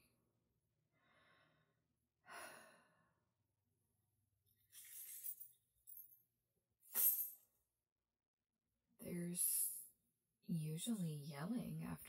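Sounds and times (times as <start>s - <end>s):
woman breathing: 0.9s - 3.4s.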